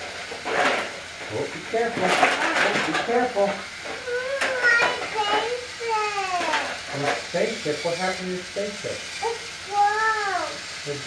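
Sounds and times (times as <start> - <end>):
child's high-pitched wordless voice: 3.9 - 6.8, 9.2 - 10.8.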